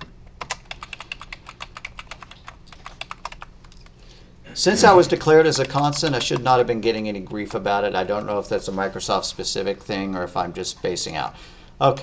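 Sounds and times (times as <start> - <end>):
computer keyboard typing: 0.4 - 3.9, 5.4 - 6.7.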